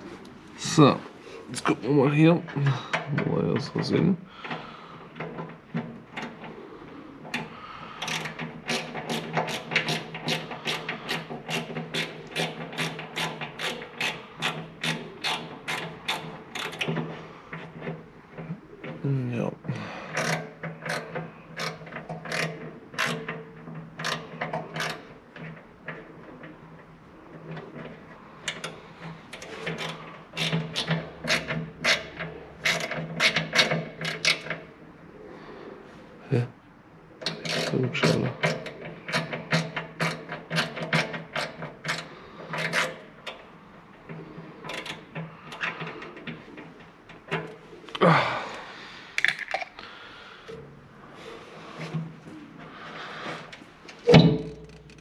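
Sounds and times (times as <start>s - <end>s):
hand ratchet clicking: 7.3s - 17.0s, 20.1s - 23.4s, 28.5s - 34.6s, 38.4s - 43.4s.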